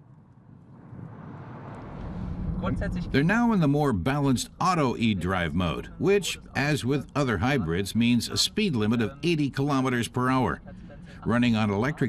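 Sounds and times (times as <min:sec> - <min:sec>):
car driving past rushing: 0:00.4 - 0:03.2.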